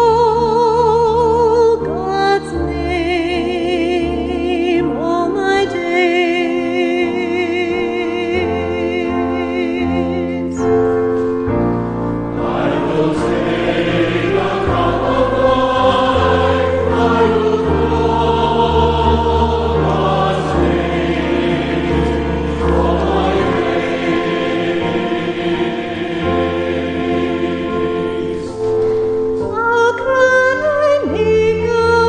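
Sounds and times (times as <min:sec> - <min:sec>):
sustained keyboard accompaniment: 0:00.0 - 0:32.0
congregation singing: 0:02.1 - 0:29.6
cantor singing: 0:12.3 - 0:28.9.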